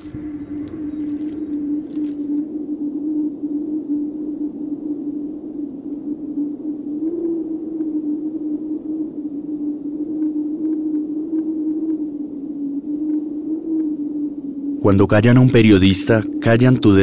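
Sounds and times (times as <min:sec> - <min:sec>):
low droning hum: 0:00.0 - 0:11.2.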